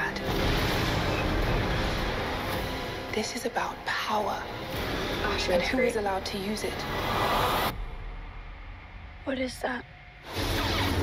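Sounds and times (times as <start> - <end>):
low rumble: 0.2 - 10.4
loud rushing noise: 6.6 - 8.9.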